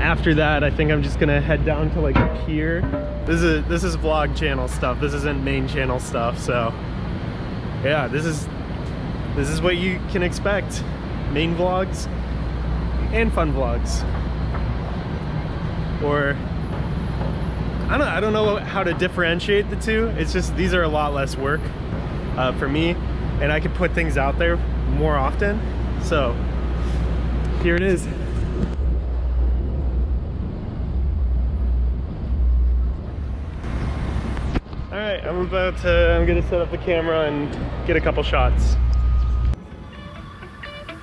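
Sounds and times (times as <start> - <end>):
traffic hum: 0.0 - 41.0.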